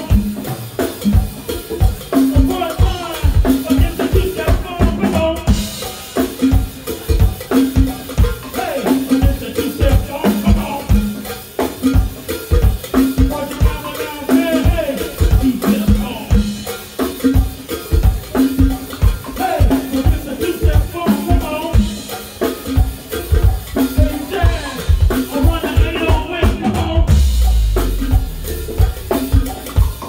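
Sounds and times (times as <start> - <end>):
shaken tambourine: 0.0 - 26.5, 27.1 - 30.0
drum kit beat: 0.0 - 30.0
live band playing: 0.0 - 30.0
bass line: 24.4 - 30.0.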